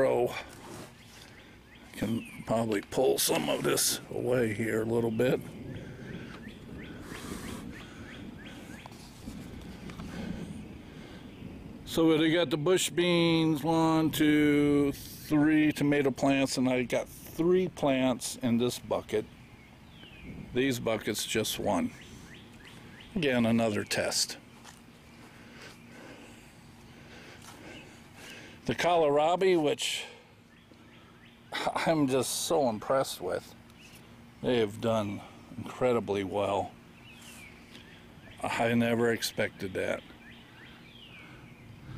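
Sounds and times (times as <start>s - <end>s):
songbird calling: 0.0s - 11.8s, 18.9s - 29.3s, 30.0s - 41.9s
low steady hum: 0.0s - 41.9s
steady low rumble: 1.2s - 29.2s, 40.9s - 41.9s.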